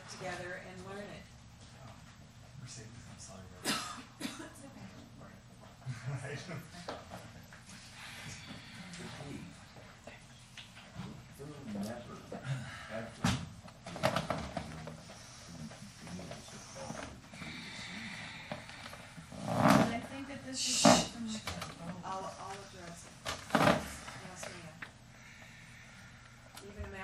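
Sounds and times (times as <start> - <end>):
people moving in a room: 0.0 - 27.0.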